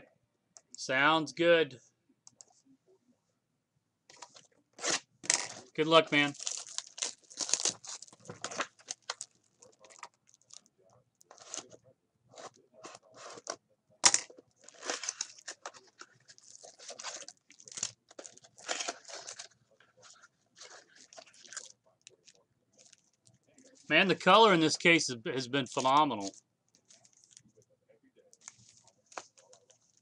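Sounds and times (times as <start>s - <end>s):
foil pack tearing and crinkling: 6.2s - 10.6s, 14.6s - 19.5s.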